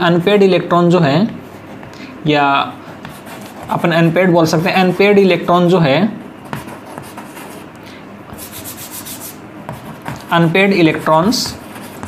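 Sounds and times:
chalk scraping on blackboard: 0:02.8 - 0:04.4, 0:06.5 - 0:07.7, 0:08.3 - 0:12.0.

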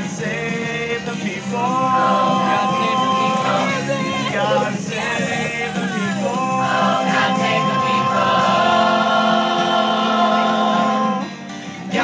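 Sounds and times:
chorus singing: 0:00.0 - 0:12.0.

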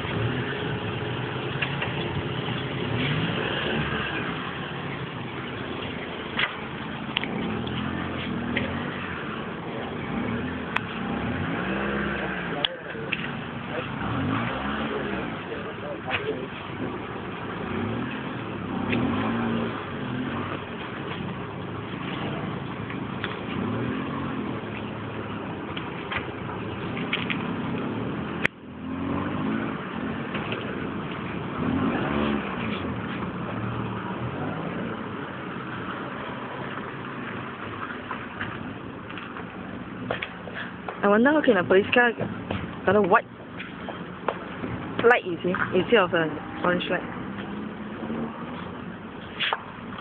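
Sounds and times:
indistinct voices talking: 0:00.0 - 0:23.1, 0:38.4 - 0:49.7
car engine running: 0:00.0 - 0:50.0.

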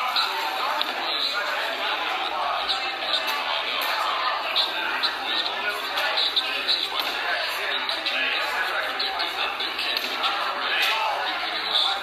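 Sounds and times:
chatter of many voices: 0:00.0 - 0:12.0.

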